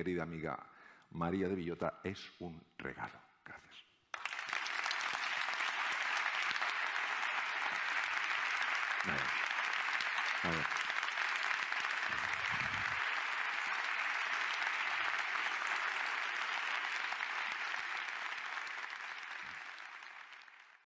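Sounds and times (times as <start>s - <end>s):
audience applauding: 4.1s - 20.9s.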